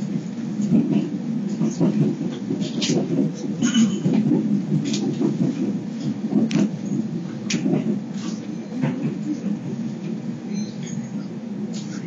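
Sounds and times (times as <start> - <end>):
train cabin rumble: 0.0 - 12.0.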